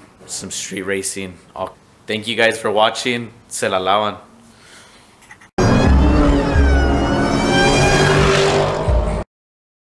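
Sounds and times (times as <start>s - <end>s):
car engine revving: 5.6s - 9.2s.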